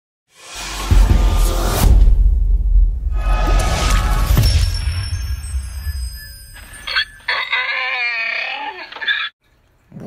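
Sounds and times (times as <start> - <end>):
animal cry: 7.3 - 9.3.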